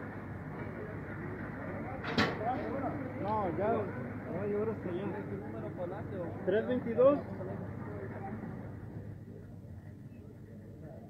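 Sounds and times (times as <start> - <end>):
street noise: 0.0 - 11.0.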